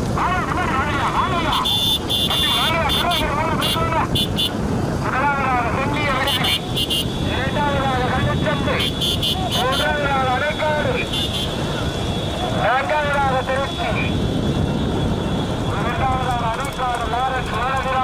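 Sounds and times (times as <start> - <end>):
vehicle engine and road noise: 0.0 - 18.0
race commentator calling excitedly: 0.1 - 14.2, 15.6 - 18.0.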